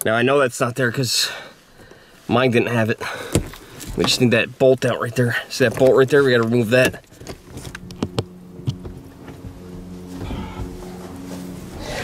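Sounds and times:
soft held chord music: 7.8 - 12.0.

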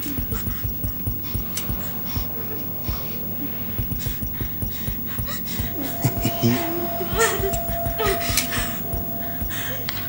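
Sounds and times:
suspense film score: 0.0 - 10.0
person gasping breaths: 9.4 - 9.9.

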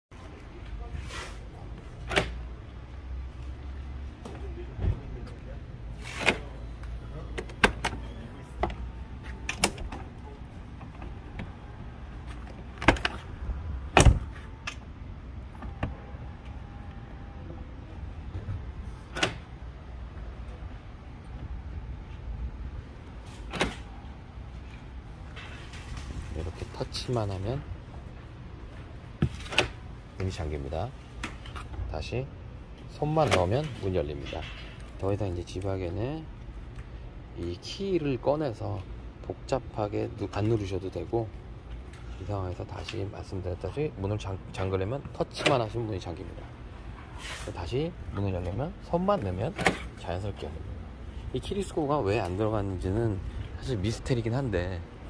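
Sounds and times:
heavy door thud: 13.9 - 14.3
car door locks clacking: 13.9 - 14.8.

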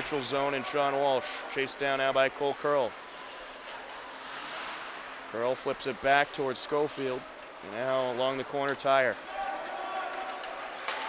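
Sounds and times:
ice rink ambience: 0.0 - 11.0.

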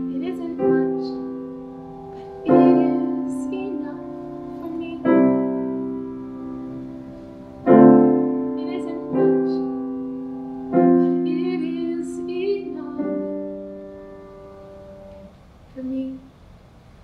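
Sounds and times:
piano playing slow chords: 0.0 - 15.4.

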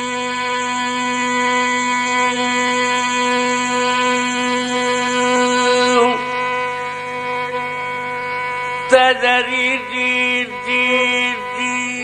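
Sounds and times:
drone: 0.0 - 12.0
long held note: 0.0 - 12.0.

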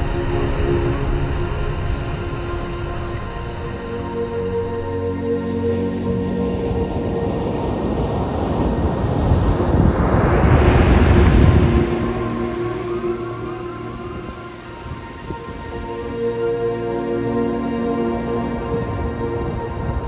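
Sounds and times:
background music: 0.0 - 20.0
wave breaking on sand: 5.4 - 16.5.

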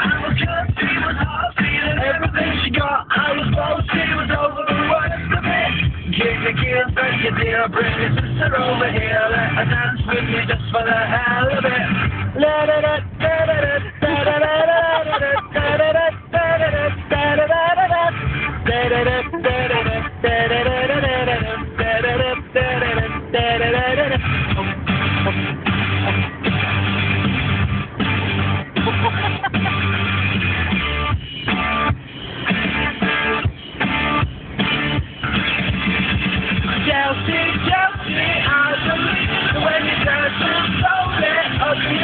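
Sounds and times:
instrumental rock music: 0.0 - 42.0.

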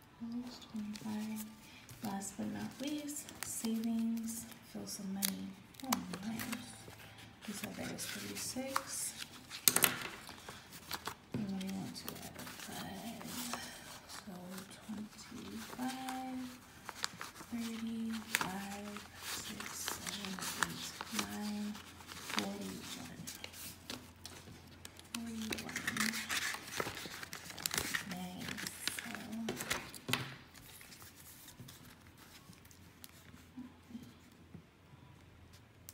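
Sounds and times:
banknotes rustling and flicking: 0.2 - 34.3.

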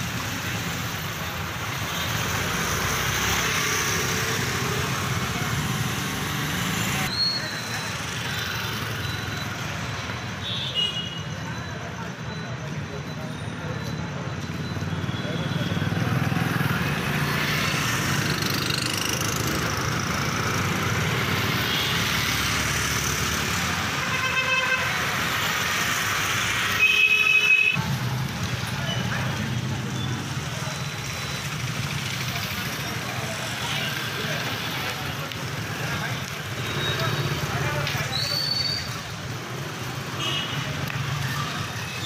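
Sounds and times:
passing vehicles: 0.0 - 42.0
vehicle horn: 24.0 - 24.9.

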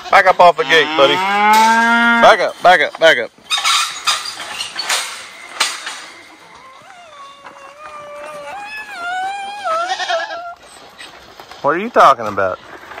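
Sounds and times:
goat bleating: 6.3 - 10.6.

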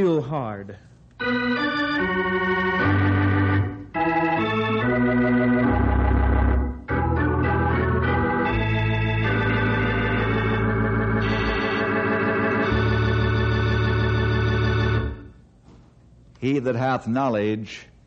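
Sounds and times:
organ playing held chords: 1.2 - 15.4.

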